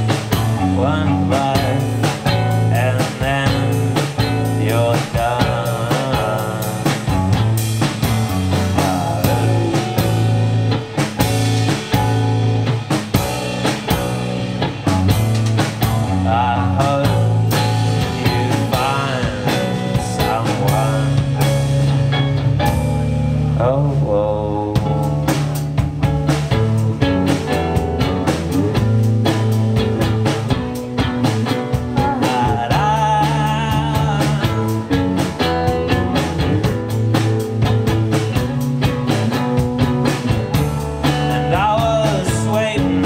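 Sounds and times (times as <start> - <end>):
drum kit steady beat: 0.0 - 23.6, 24.8 - 43.0
bending melodic line: 0.0 - 43.0
electric bass: 0.0 - 43.0.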